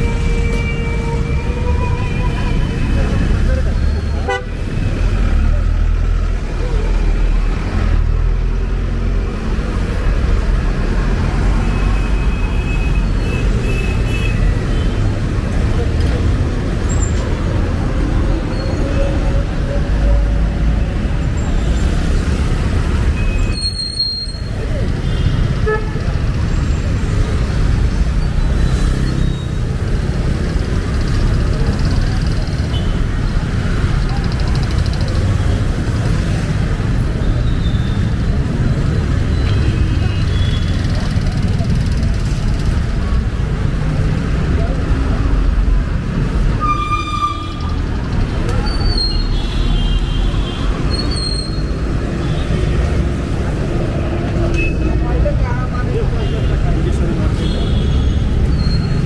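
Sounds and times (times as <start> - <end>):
traffic engines rumbling: 0.0 - 59.0
vehicle horns tooting: 4.2 - 4.6, 25.0 - 26.0, 46.5 - 47.8
passersby voices: 30.0 - 46.6, 51.7 - 59.0.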